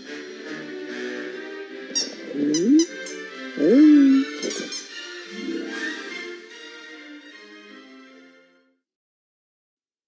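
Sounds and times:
orchestral menu music: 0.2 - 7.2
cartoon alien voices calling ooh: 2.3 - 3.0, 3.6 - 4.8.

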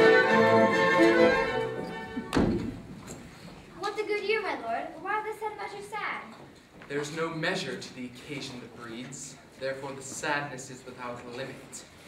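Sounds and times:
string music: 0.0 - 2.4.

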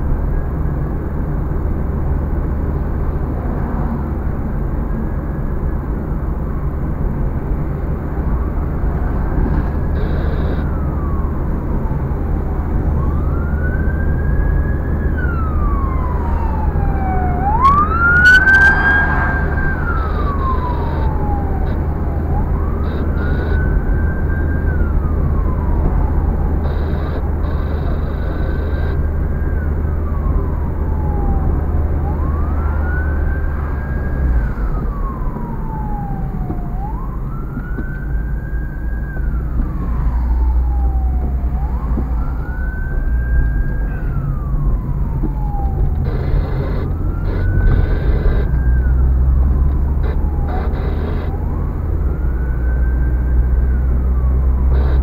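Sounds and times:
car engine and road rumble: 0.0 - 55.0
siren wailing: 7.4 - 55.0.

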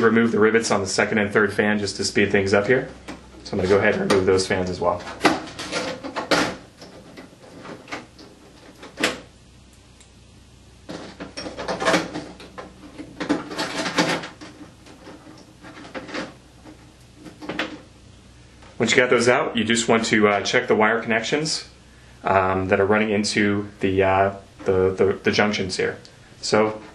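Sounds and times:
cooling fans clicking and rattling: 0.0 - 26.9.

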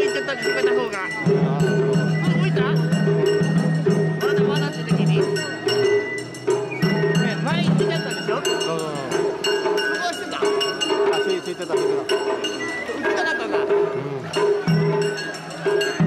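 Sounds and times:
crowd voices: 0.0 - 16.0.

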